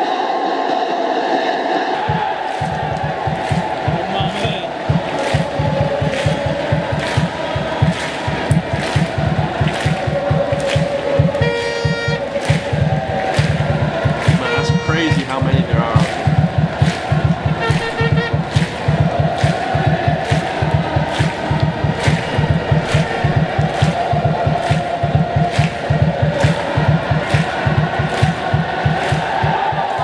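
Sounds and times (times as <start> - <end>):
stadium crowd chanting: 0.0 - 30.0
drum beat: 2.0 - 30.0.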